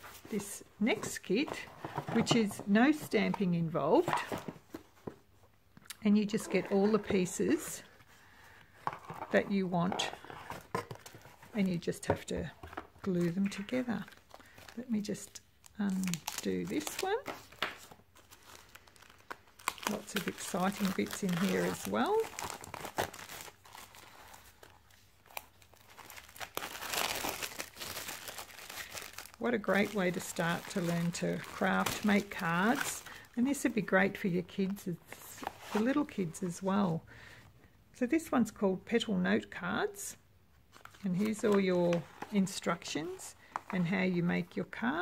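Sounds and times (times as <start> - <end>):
plastic wrap crinkling: 12.7 - 33.4.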